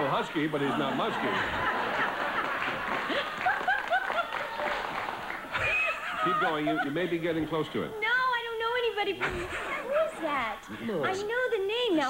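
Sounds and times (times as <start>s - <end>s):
audience laughing: 0.1s - 7.9s, 9.1s - 11.0s
people clapping: 1.3s - 6.8s.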